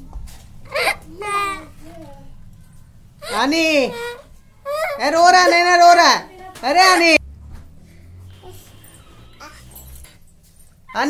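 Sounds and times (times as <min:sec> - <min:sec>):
child whimpering: 0:03.2 - 0:05.2.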